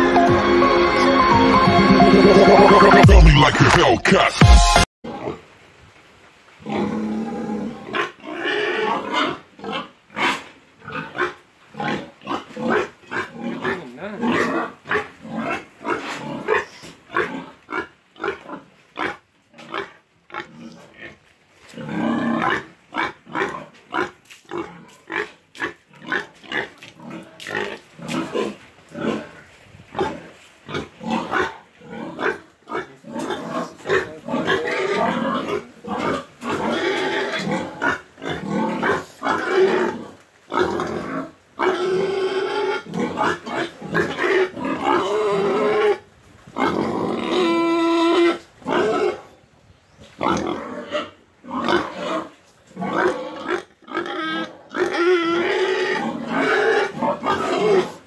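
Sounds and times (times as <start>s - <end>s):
pigs grunting: 6.6s - 46.0s, 46.6s - 49.3s, 50.1s - 58.0s.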